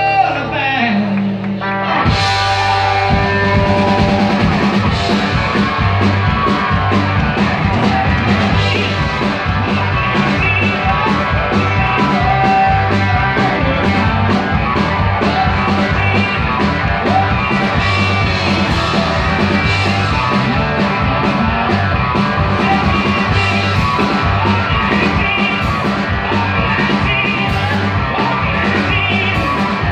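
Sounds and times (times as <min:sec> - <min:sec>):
bass: 0:00.0 - 0:29.9
electric guitar: 0:00.0 - 0:29.9
steady drum beat: 0:02.1 - 0:29.9.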